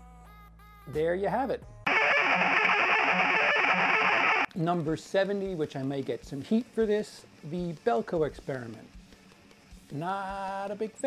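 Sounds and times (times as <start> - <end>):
harsh distorted music sting: 1.9 - 4.5.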